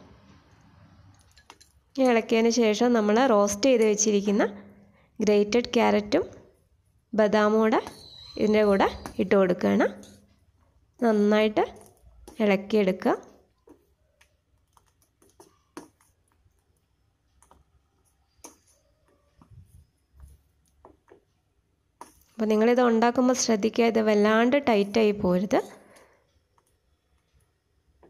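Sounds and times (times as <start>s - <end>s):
woman speaking: 2.0s - 6.4s, 7.2s - 10.1s, 11.0s - 11.8s, 12.4s - 13.4s, 22.4s - 25.8s.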